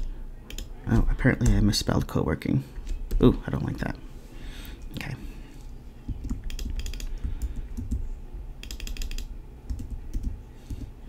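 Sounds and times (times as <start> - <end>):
computer keyboard typing: 0.0 - 1.6, 6.1 - 8.0, 8.6 - 10.9.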